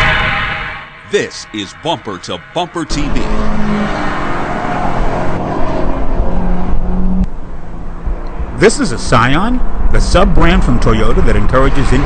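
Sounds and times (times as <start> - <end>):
car engine driving: 0.0 - 12.0
loud road noise: 0.0 - 12.0.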